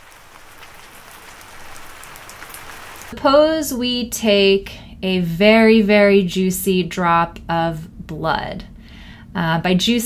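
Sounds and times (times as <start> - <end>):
raindrop ticks: 0.0 - 3.1
rain falling: 0.0 - 3.2.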